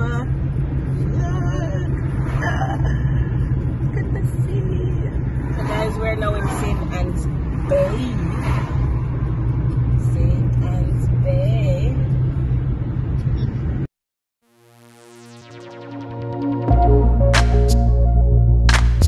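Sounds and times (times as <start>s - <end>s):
car road and engine drone: 0.0s - 13.9s, 14.8s - 19.0s.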